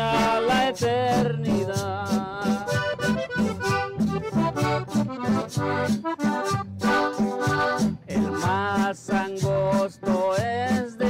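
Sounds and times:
amplified acoustic guitar: 0:00.0 - 0:11.0
electronic drum kit beat: 0:00.0 - 0:11.0
melody of held notes: 0:02.9 - 0:07.9.

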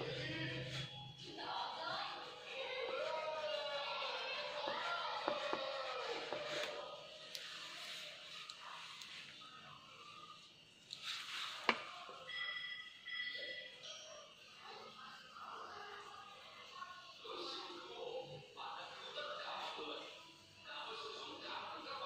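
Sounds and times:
faint room sounds: 0:00.0 - 0:22.0.

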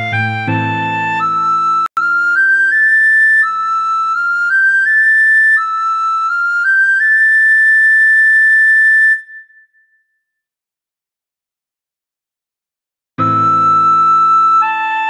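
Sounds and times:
recorder playing melody: 0:00.0 - 0:09.4, 0:13.2 - 0:15.0.

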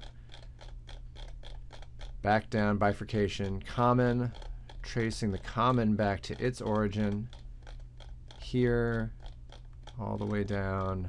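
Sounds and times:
low steady hum: 0:00.0 - 0:11.0
mouse scroll wheel ticking: 0:00.0 - 0:11.0.

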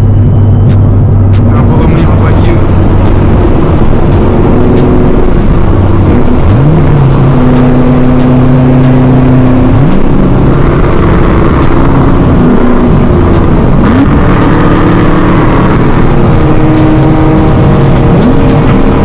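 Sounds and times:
car engine running hard: 0:00.0 - 0:19.0.

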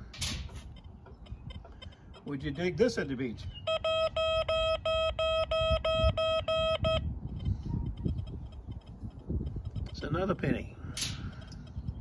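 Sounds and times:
metal detector beeping: 0:03.4 - 0:07.1.

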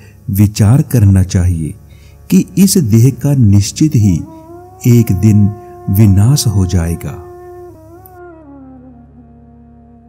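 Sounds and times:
low steady drone: 0:00.0 - 0:10.0.

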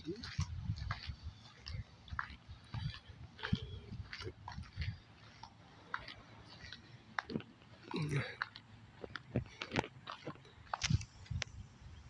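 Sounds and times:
footsteps crunching on gravel: 0:00.1 - 0:11.3.

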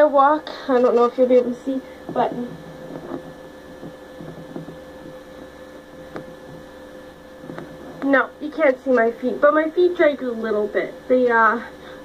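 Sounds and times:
steady electrical hum: 0:00.0 - 0:12.0
faint footsteps: 0:02.0 - 0:05.5.

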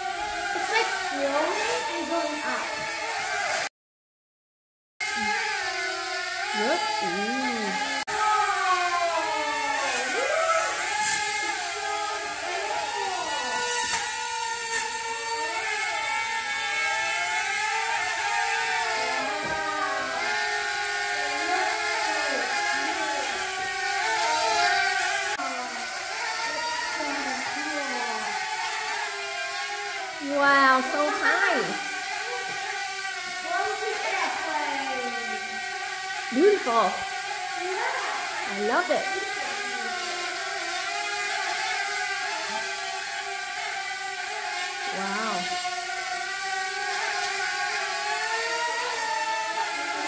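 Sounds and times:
toy quadcopter propellers whirring: 0:00.0 - 0:03.7, 0:05.0 - 0:50.0.

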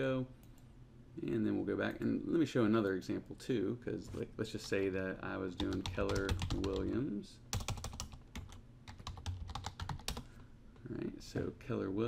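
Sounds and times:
computer keyboard typing: 0:05.6 - 0:06.9, 0:07.5 - 0:10.3.

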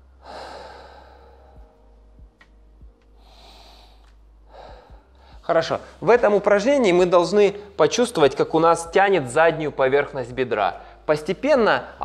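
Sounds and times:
person breathing deeply: 0:00.0 - 0:01.9, 0:03.1 - 0:06.0, 0:10.8 - 0:11.1.

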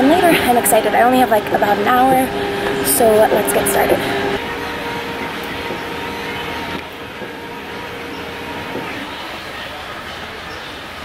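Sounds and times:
stair-climbing machine humming: 0:00.0 - 0:11.0.

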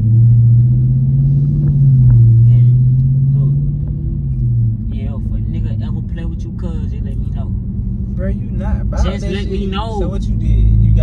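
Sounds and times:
car engine and road drone: 0:00.0 - 0:11.0.

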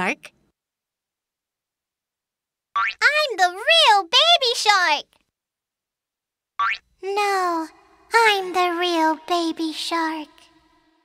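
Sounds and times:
cartoon boing sound effect: 0:06.6 - 0:06.8.

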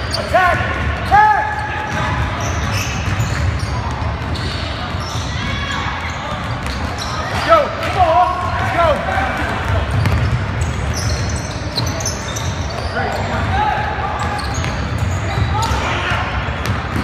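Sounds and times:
sneaker squeaks: 0:00.0 - 0:08.6, 0:09.6 - 0:17.0
basketball bouncing on wooden floor: 0:09.9 - 0:11.3.

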